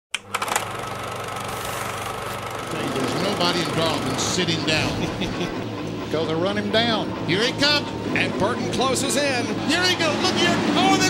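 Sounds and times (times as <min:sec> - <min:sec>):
racing car engines droning: 0:02.5 - 0:11.0.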